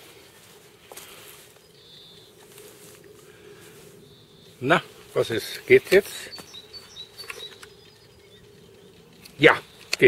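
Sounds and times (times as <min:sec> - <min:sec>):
faint steady hum: 0:00.0 - 0:10.0
light clicks: 0:09.2 - 0:10.0.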